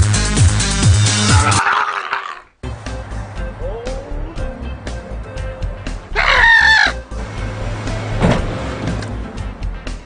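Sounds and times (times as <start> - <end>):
music with steady beat: 0.0 - 1.5, 2.6 - 6.1
rooster crowing: 6.2 - 7.0
dull thump: 8.2 - 8.5.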